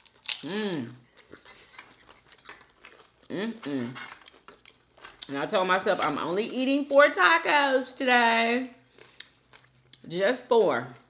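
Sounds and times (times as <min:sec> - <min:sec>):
food chewing and handling clicks: 0:01.0 - 0:07.2, 0:08.9 - 0:10.1.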